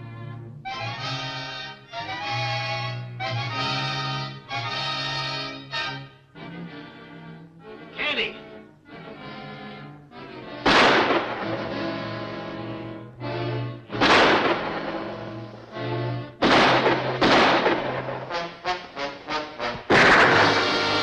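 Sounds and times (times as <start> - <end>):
dramatic orchestral music: 7.8 - 21.0
pistol shots: 10.6 - 12.8, 13.9 - 15.5, 16.4 - 18.8, 19.7 - 21.0.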